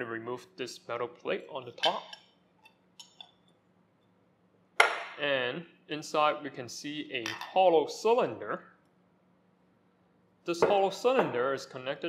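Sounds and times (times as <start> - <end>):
metal cover plate clinking: 1.8 - 2.2.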